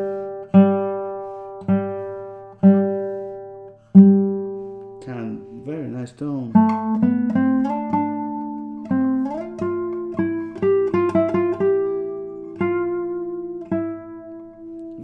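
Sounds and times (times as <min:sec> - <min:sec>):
classical guitar melody: 0:00.0 - 0:15.0.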